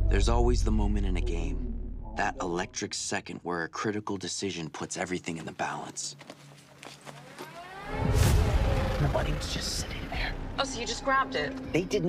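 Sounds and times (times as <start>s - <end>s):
low steady drone: 0.0s - 2.8s
rising tones riser: 0.0s - 2.8s, 7.2s - 12.0s.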